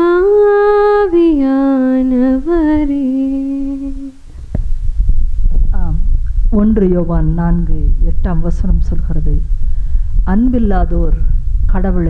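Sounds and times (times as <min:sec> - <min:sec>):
woman humming: 0:00.0 - 0:04.2
microphone handling thump: 0:02.5 - 0:12.0.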